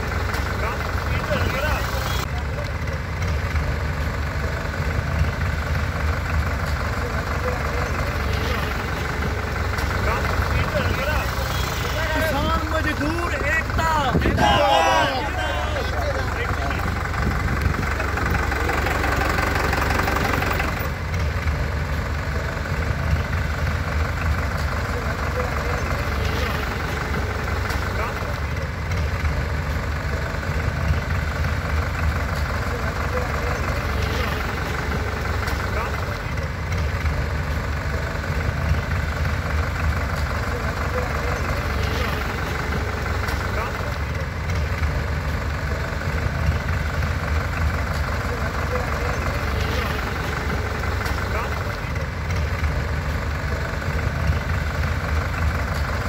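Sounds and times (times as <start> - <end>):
indistinct voices: 0.0 - 56.0
tractor diesel engines rumbling: 0.0 - 56.0.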